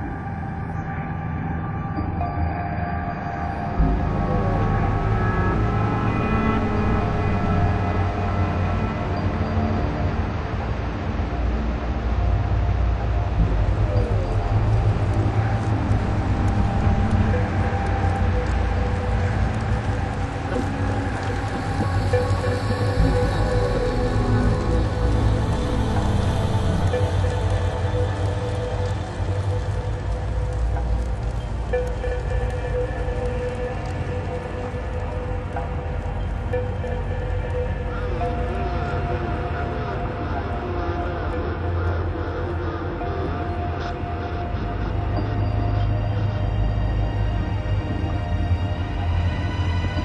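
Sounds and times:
ominous low drone: 0.0 - 50.0.

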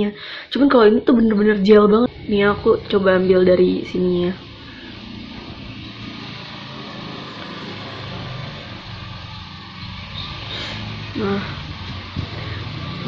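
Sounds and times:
low droning motor tone: 1.6 - 13.0.

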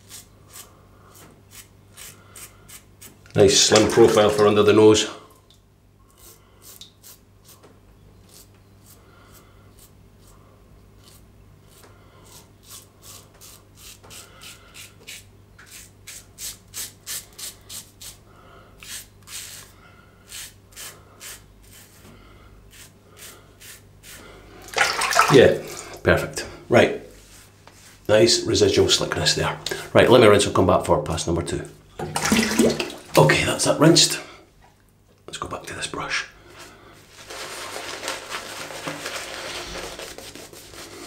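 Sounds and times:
razor scraping stubble: 1.5 - 3.3, 8.2 - 10.4, 11.0 - 18.2.

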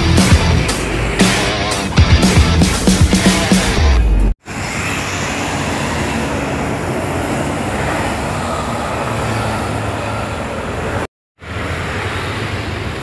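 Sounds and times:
road traffic hum: 0.0 - 13.0.

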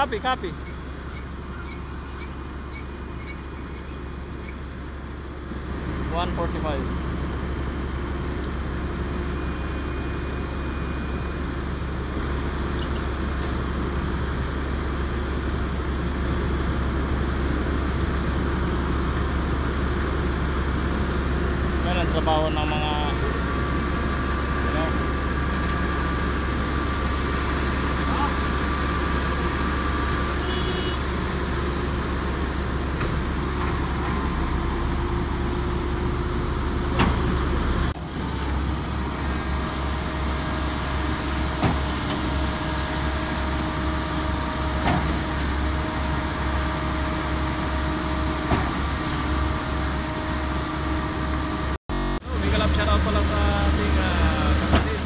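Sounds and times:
heavy diesel machinery rumbling: 0.0 - 55.0.

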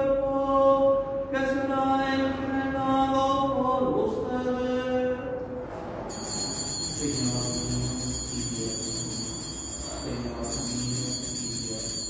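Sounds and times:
altar bells ringing: 6.1 - 12.0.

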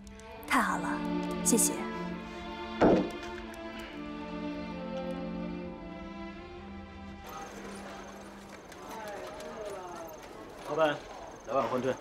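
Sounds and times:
soft string music: 0.0 - 9.7.

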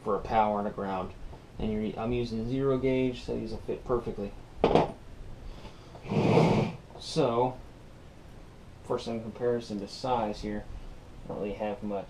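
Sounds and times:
man snorting through nose: 6.0 - 6.8.

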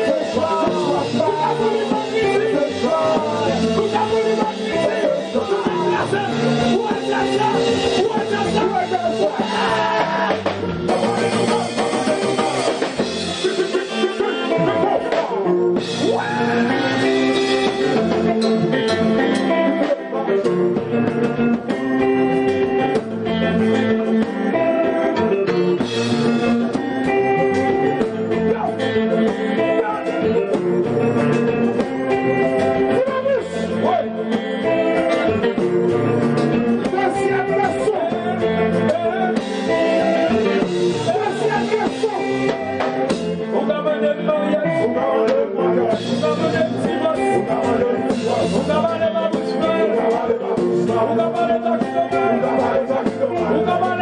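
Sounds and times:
person singing: 0.0 - 21.1, 26.4 - 30.8, 36.6 - 54.0
drums: 0.0 - 54.0
electric guitars: 0.0 - 54.0.

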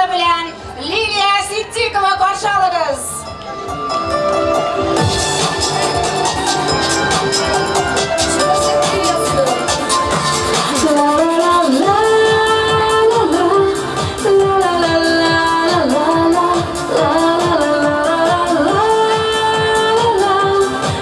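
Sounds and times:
backing track with steady beat: 0.0 - 21.0
woman singing into a microphone: 8.4 - 21.0.

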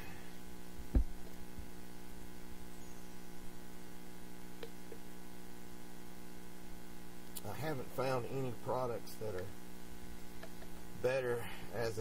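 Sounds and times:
vibrating table electric hum: 0.0 - 12.0
single knock: 0.9 - 1.1.

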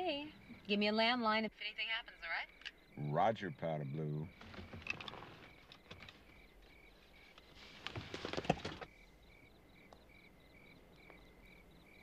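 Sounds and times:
crickets chirping: 0.0 - 12.0
brief rustling: 7.3 - 8.9.

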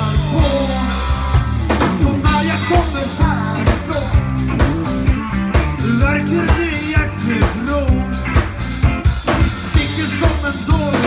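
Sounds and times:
person singing: 0.0 - 4.4, 5.8 - 8.5, 9.3 - 11.0
bass: 0.0 - 11.0
drum-kit beat: 0.0 - 11.0
electric and acoustic guitars: 0.0 - 11.0.

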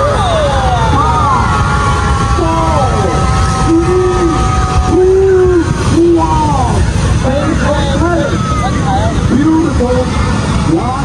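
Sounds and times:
crowd chattering: 0.0 - 11.0
steady low rumble: 0.0 - 11.0.

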